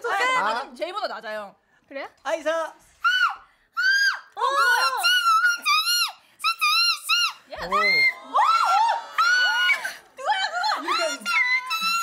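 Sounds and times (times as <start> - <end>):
women shrieking high notes: 3.0 - 10.0.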